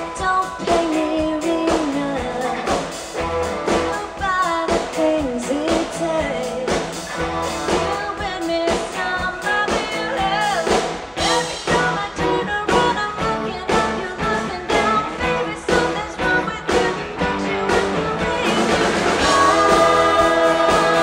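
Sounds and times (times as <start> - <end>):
drum kit beat: 0.0 - 21.0
live rock band playing: 0.0 - 21.0.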